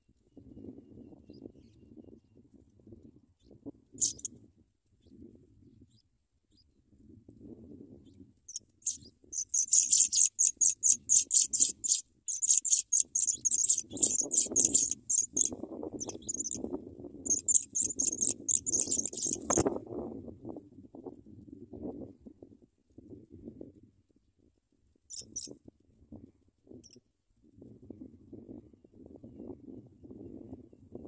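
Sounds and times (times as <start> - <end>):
nestlings high cheeps: 4.0 - 4.3, 8.8 - 16.6, 17.3 - 19.6.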